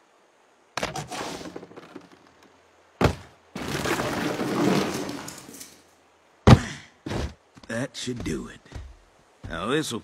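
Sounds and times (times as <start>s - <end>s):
corn tumbling and rustling: 0.8s - 5.8s
corn cobs thumping and clattering: 3.0s - 5.4s.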